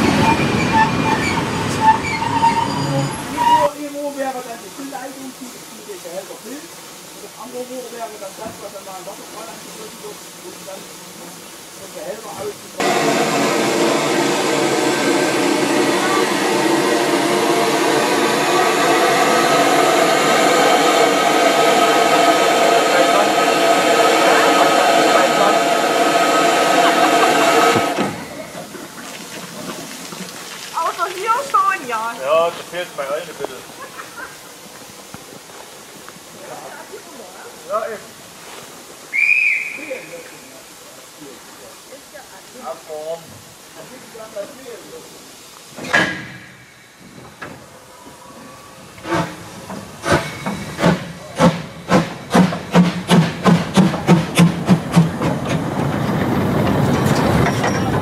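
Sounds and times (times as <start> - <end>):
train coaches rolling past: 0.0 - 5.2, 11.9 - 58.0
steam locomotive blowing off steam: 0.0 - 58.0.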